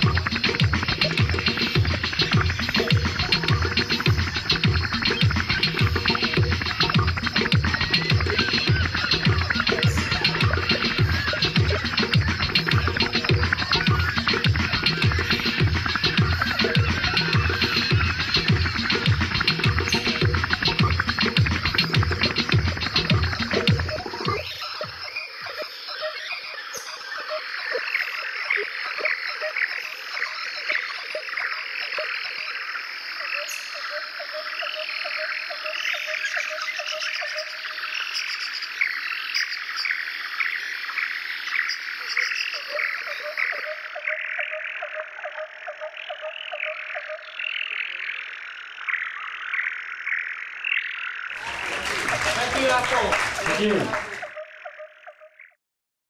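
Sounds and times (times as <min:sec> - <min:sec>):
low trilling frog call: 0:00.0 - 0:51.5
frogs croaking: 0:00.0 - 0:55.6.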